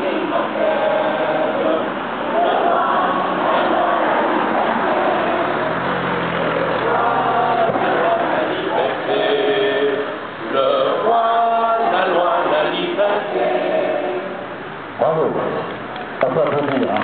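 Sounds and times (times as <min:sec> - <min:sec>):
children singing in unison: 0:00.0 - 0:14.5.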